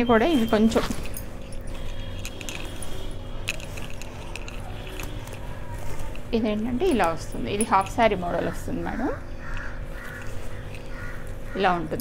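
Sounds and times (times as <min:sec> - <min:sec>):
fabric rustling: 0:00.0 - 0:12.0
light jingling clinks: 0:00.4 - 0:08.4.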